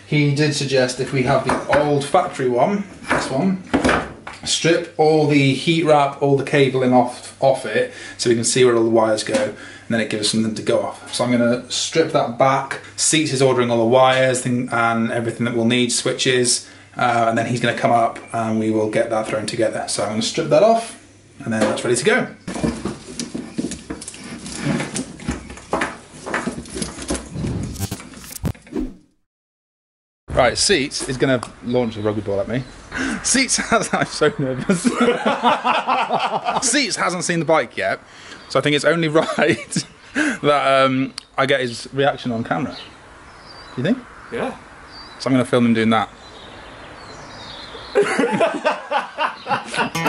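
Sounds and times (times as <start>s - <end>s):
low outdoor background noise: 0.0s - 27.3s, 30.3s - 50.0s
rustling and scraping of cable: 22.5s - 28.7s.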